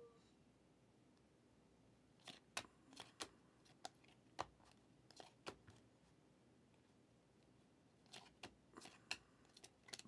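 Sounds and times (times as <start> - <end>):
cards clicking and snapping: 2.2 - 5.8, 8.0 - 10.0.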